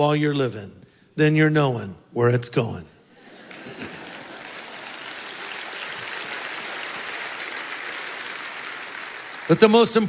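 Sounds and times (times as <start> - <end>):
congregation applauding: 3.2 - 10.0.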